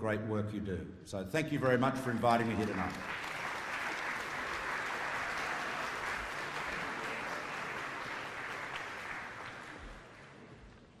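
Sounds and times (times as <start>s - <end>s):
audience applauding: 2.4s - 11.0s.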